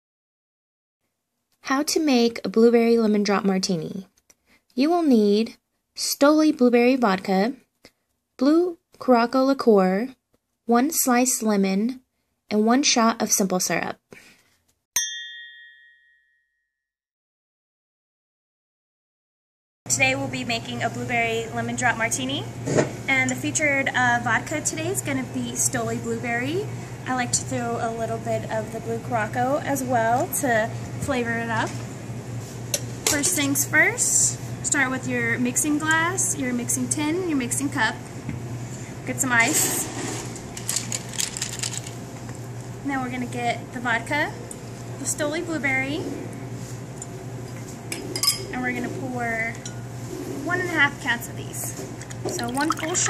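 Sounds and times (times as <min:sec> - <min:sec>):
bright bell-like ding: 0:15.0 - 0:16.9
ice cubes rattling in metal tin: 0:40.6 - 0:42.0.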